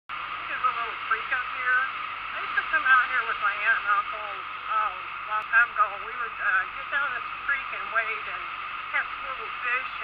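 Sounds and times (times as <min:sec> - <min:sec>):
person talking: 0:00.4 - 0:10.0.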